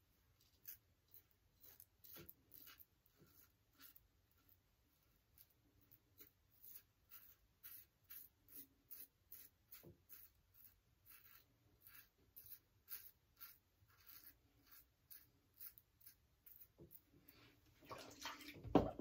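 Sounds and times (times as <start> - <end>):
razor scraping stubble: 0.4 - 4.5, 6.2 - 17.1.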